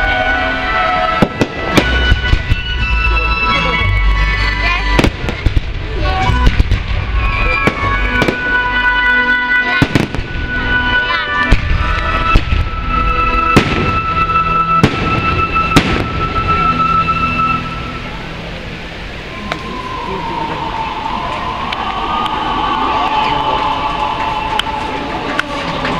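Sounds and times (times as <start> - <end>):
music: 0.0 - 18.8
fireworks bangs: 0.8 - 3.0, 4.8 - 17.6.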